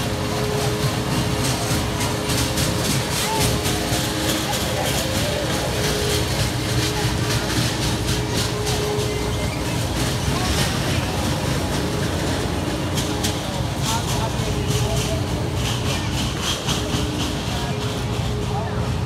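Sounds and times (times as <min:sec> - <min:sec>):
low mechanical hum: 0:00.0 - 0:19.0
people's voices: 0:00.0 - 0:19.0.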